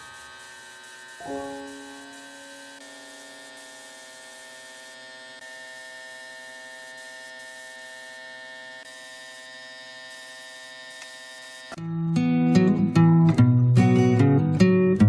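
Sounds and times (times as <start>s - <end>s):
hiss: 0.0s - 3.8s
steady hum: 0.0s - 3.8s.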